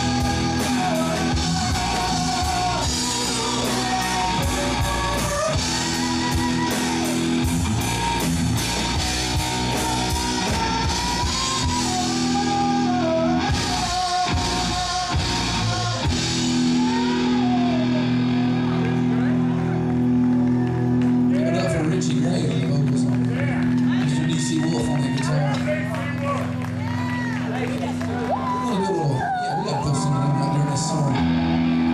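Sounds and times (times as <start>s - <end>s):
drums and cymbal beat: 0.0s - 18.4s
bass: 0.0s - 31.9s
electric guitars: 0.0s - 31.9s.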